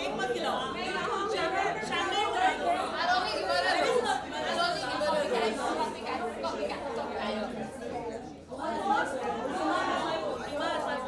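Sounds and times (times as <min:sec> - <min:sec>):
people talking and laughing: 0:00.0 - 0:11.0.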